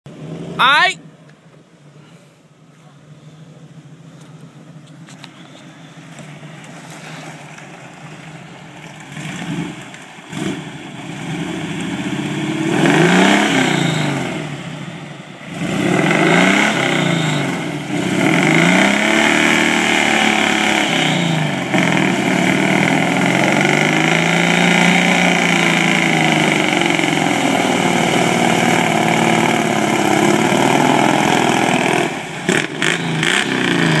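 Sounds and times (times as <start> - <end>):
engine revving hard: 9.1 - 34.0.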